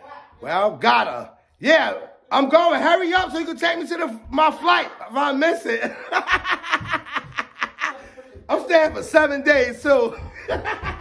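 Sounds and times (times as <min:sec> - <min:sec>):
man laughing hard: 0:05.8 - 0:08.4, 0:10.1 - 0:11.0.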